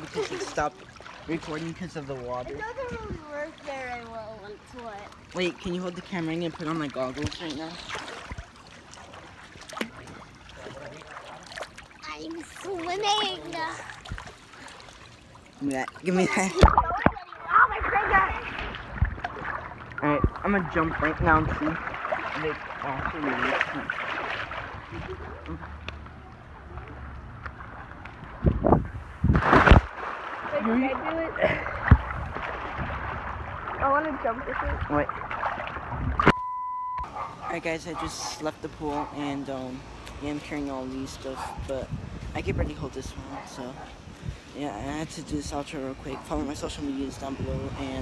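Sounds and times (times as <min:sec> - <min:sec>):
pool water lapping and splashing: 0:00.0 - 0:36.3, 0:37.0 - 0:48.0
person jumping into pool splash: 0:16.3 - 0:19.8, 0:23.5 - 0:26.1, 0:27.6 - 0:36.4.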